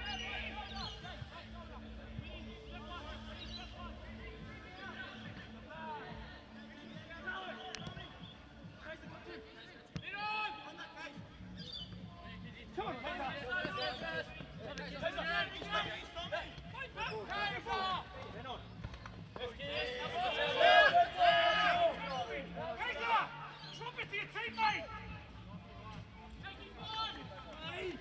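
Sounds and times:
players shouting: 12.7s - 18.7s, 19.4s - 28.0s.

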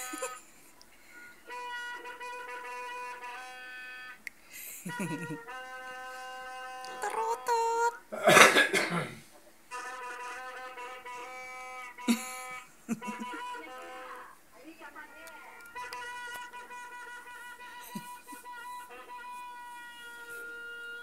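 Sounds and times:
toy party horns blowing: 0.0s - 0.5s, 1.1s - 8.0s, 9.7s - 14.4s, 15.3s - 21.0s.

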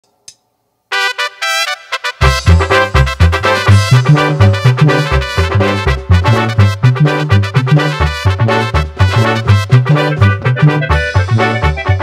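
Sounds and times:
keyboard brass melody: 0.9s - 12.0s.

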